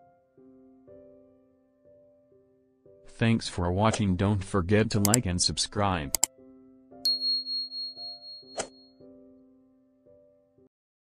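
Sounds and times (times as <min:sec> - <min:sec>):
soft background music: 0:00.0 - 0:10.7
notification bell ding: 0:07.1 - 0:08.8.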